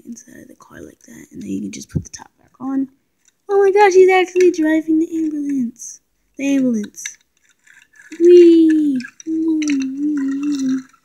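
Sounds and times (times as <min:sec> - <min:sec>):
girl making playful vehicle sound: 0:08.1 - 0:10.9.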